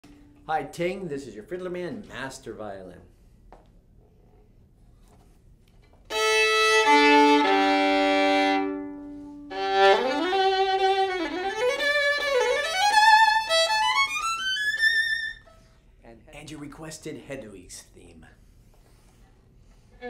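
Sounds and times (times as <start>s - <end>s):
solo violin bowed: 6.1s - 15.6s.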